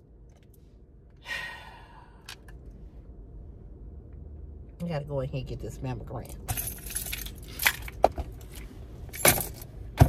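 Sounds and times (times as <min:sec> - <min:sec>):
small metal objects jingling: 0:06.5 - 0:07.8.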